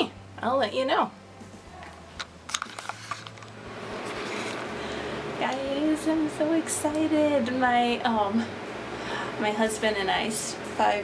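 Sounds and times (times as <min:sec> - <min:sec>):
camera handling clicks and taps: 0:02.2 - 0:03.5.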